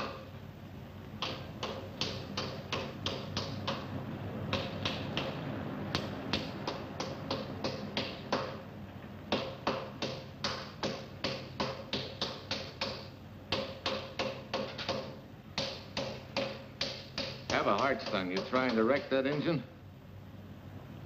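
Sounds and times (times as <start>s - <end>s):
hand tool striking metal: 0.0s - 0.3s, 9.3s - 19.6s.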